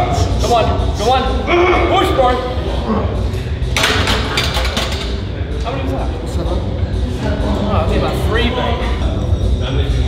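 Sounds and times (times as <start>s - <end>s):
man's voice: 5.6s - 10.0s.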